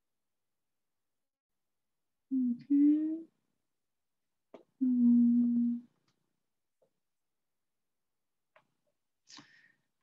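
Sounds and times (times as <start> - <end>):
woman humming mmm: 4.8 - 5.9.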